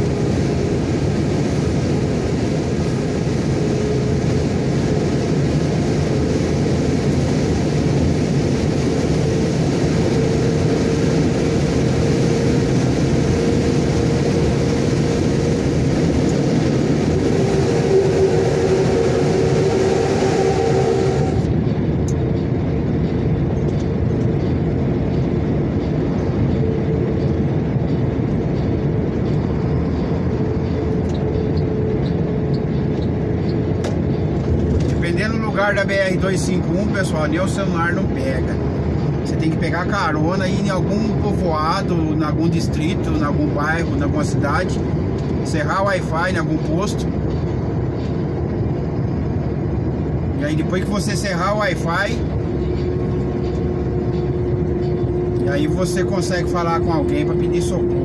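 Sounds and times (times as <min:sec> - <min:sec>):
vehicle road and engine noise: 0:00.0 - 0:58.0.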